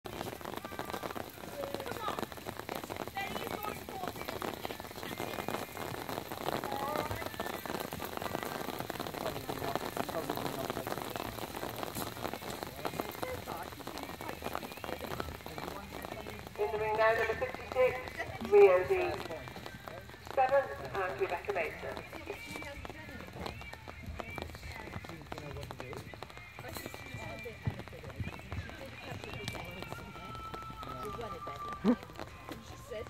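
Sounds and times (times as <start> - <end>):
light rain pattering: 0.0 - 33.0.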